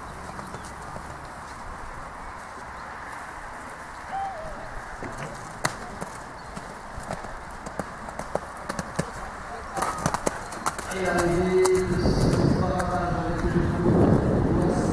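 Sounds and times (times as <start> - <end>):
faint voices: 4.0 - 6.4
horse hooves knocking: 4.8 - 13.5.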